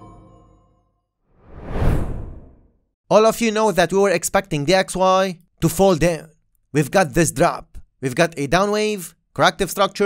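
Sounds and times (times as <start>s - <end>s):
whoosh transition effect: 1.4s - 2.7s.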